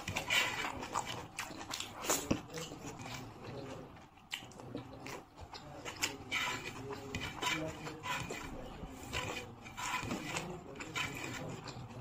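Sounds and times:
wet chewing and lip-smacking: 0:00.0 - 0:06.2.

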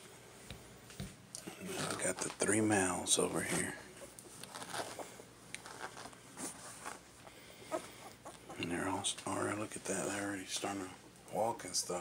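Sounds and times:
puppies squeaking: 0:07.6 - 0:08.7
man speaking: 0:08.6 - 0:12.0.

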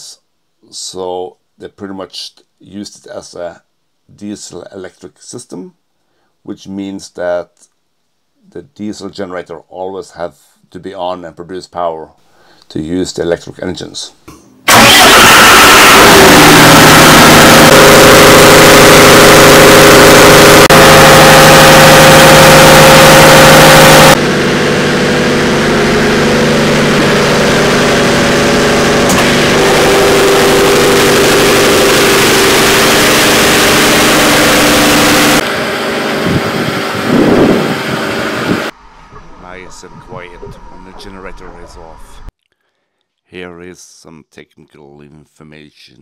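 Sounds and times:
diesel generator engine running: 0:14.7 - 0:41.9.

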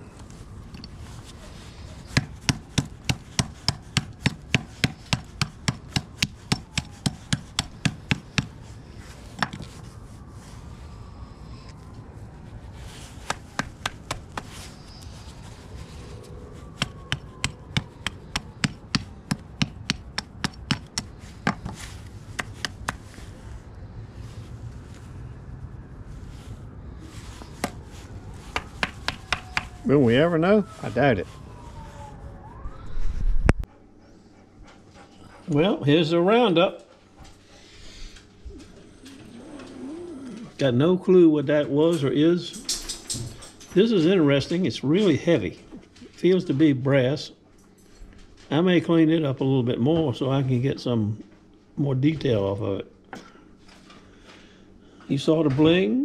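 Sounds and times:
hammer blows on hard lump: 0:02.0 - 0:08.7.

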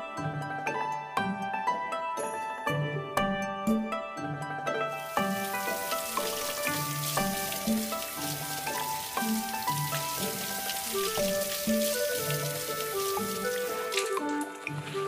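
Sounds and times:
background music: 0:00.0 - 0:15.0
tap water splashing onto cloth: 0:05.0 - 0:15.0.

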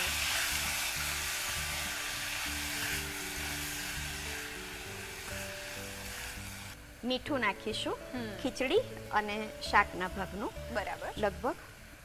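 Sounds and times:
spatula stirring: 0:00.0 - 0:06.8
vegetables sizzling in oil: 0:00.0 - 0:12.0.

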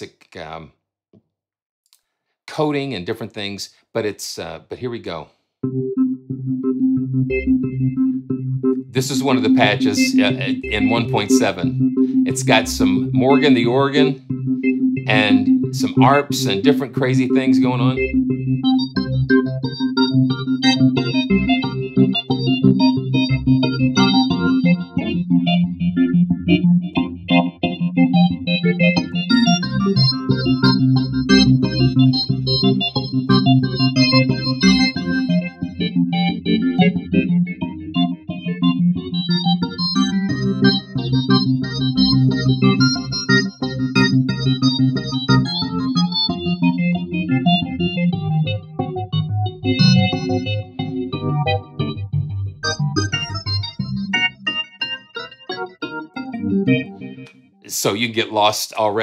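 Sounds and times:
arpeggiated synth notes: 0:05.6 - 0:57.3
organ holding sustained chords: 0:05.6 - 0:59.0.

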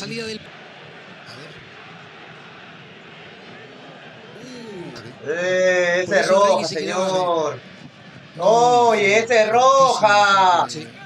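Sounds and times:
stadium crowd noise on tv: 0:00.0 - 0:11.0.

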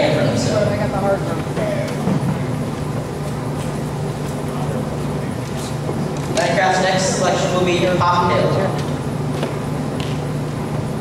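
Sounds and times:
indistinct talking: 0:00.0 - 0:09.9
low room hum: 0:00.0 - 0:11.0.

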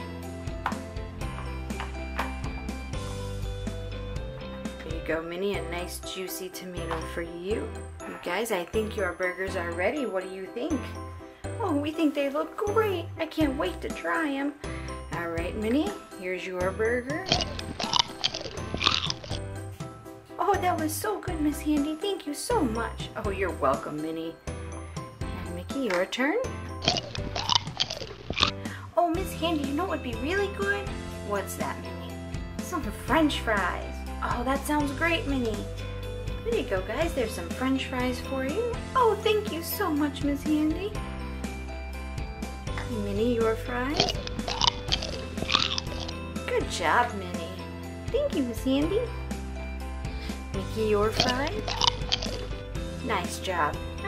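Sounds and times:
light background music: 0:00.0 - 0:54.0
person making chomping noises: 0:17.3 - 0:19.4, 0:44.0 - 0:46.2, 0:51.2 - 0:52.5.

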